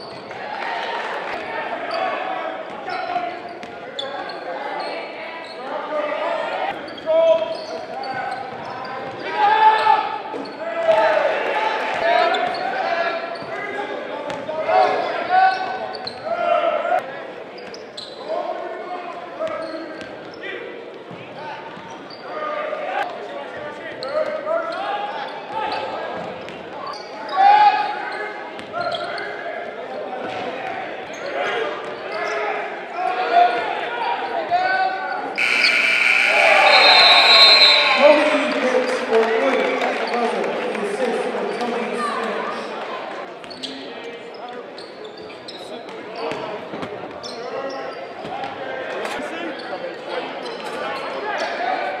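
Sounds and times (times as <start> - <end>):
people calling and shouting: 31.1 - 43.9.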